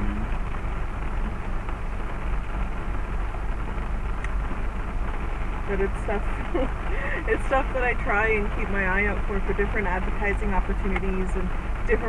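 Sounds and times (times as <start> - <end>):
deep even rumble: 0.0 - 12.0
rain on car: 0.0 - 12.0
tyres hissing on wet road: 4.4 - 8.4.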